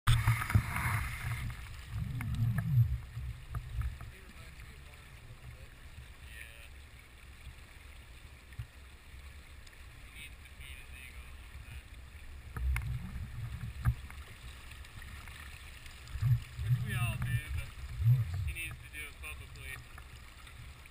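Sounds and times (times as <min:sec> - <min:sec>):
water sloshing against camera: 0:00.1 - 0:20.9.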